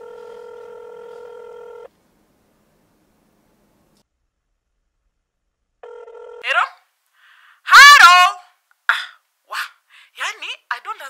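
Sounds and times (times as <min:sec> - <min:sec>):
phone ringing tone: 0:00.0 - 0:01.9, 0:05.8 - 0:06.4.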